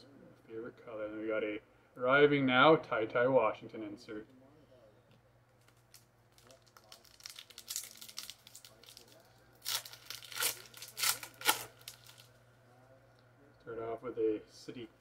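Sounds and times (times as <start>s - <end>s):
wrapper tearing open: 5.6s - 12.3s
wrapper crinkling: 5.6s - 12.4s.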